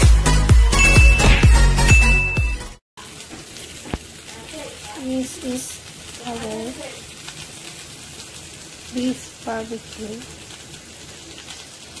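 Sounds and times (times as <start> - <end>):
kebabs sizzling on grill pan: 3.0 - 12.0.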